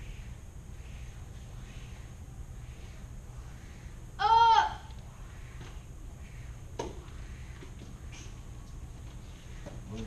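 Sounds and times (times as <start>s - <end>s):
boy's short high shout: 4.2s - 4.9s.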